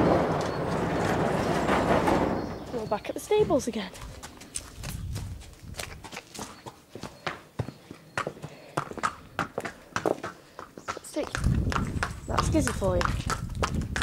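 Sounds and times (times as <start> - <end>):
horse hooves on brick paving: 0.0 - 14.0.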